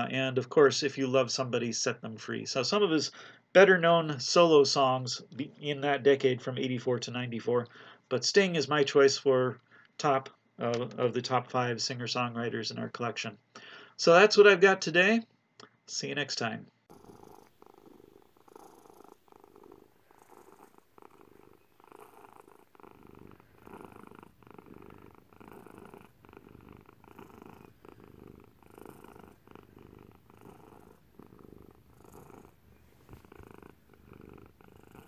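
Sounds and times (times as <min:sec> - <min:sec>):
cat purring: 0:16.9 - 0:35.0.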